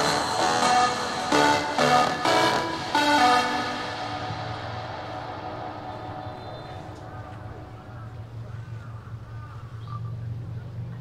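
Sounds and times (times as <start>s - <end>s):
pop song through speaker: 0.0s - 8.1s.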